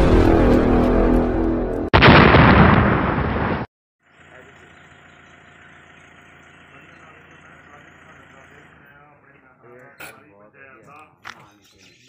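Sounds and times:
outdoor background noise with hum: 4.0s - 12.0s.

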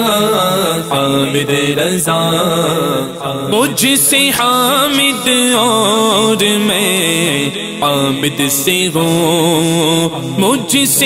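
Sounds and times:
man singing chant-like: 0.0s - 11.0s
vocal drone: 0.0s - 11.0s.

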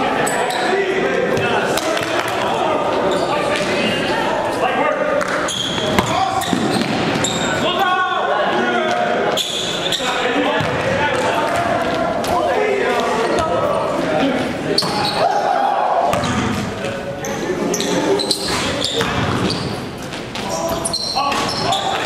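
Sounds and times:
basketball bouncing on court: 5.8s - 7.4s, 10.6s - 12.4s, 16.1s - 16.8s.

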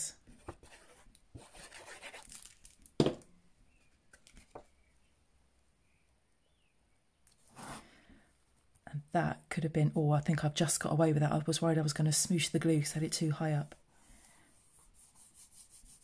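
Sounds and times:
hands rubbing paper: 14.5s - 16.0s.

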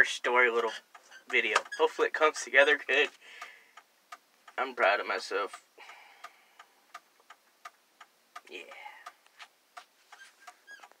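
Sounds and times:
faint even ticking: 0.5s - 11.0s.

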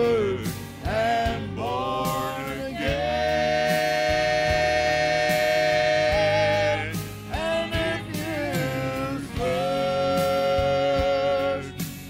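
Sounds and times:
gospel singers in harmony: 0.0s - 12.0s
instrumental backing: 0.0s - 12.0s.

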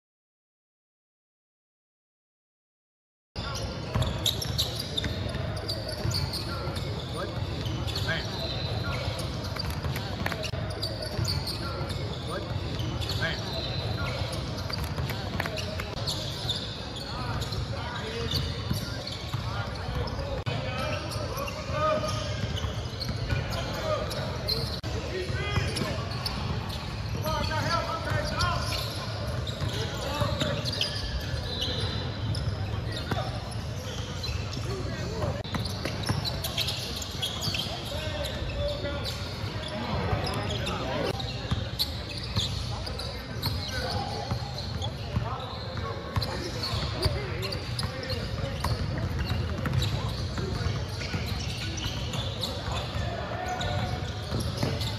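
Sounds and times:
voices in echoing hall: 3.4s - 54.9s.

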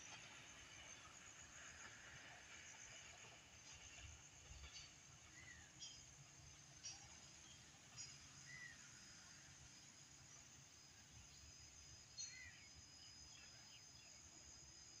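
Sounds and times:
faint bird chirps: 6.9s - 8.9s, 12.1s - 14.2s.

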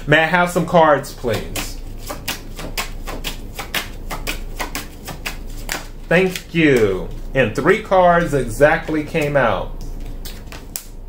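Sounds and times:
cards being shuffled by hand: 0.6s - 11.0s.

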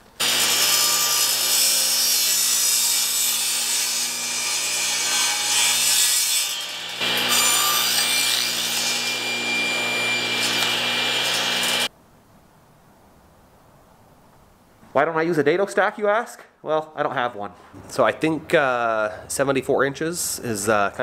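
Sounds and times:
table saw cutting wood: 0.2s - 11.9s.

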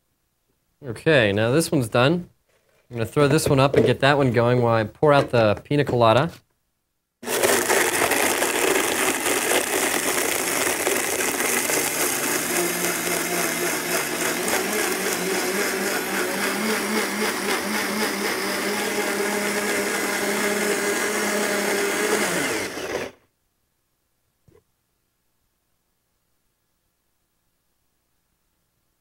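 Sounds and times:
blender crushing ice: 7.2s - 23.2s.

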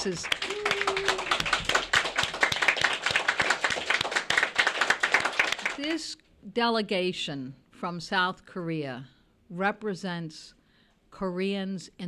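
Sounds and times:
audience clapping: 0.0s - 5.8s.

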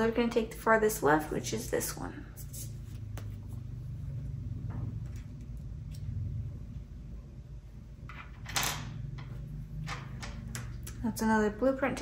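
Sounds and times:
low hum: 2.7s - 11.2s.

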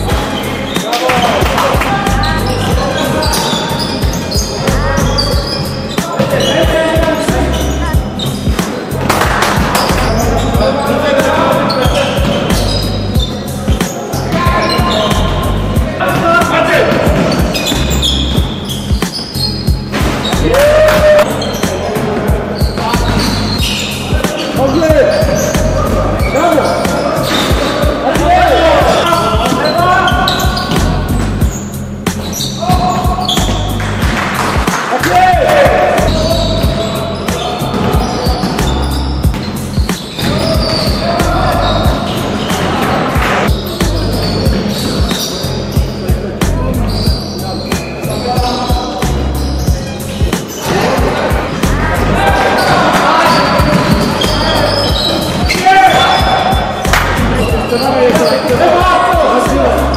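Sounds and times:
players calling out: 0.0s - 59.9s
sneakers squeaking: 0.0s - 59.9s.

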